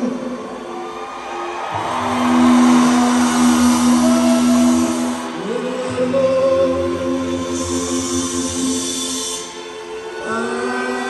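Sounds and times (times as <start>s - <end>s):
long held note: 1.7s - 9.0s.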